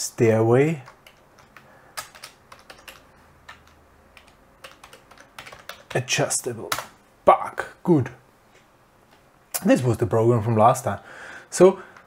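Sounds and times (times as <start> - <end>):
keyboard typing: 0.8 - 6.1.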